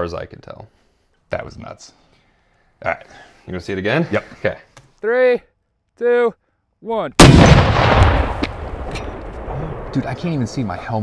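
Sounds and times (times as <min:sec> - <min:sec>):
rocket launcher explosion: 0:07.2 - 0:10.6
rumble after blast: 0:07.2 - 0:10.6.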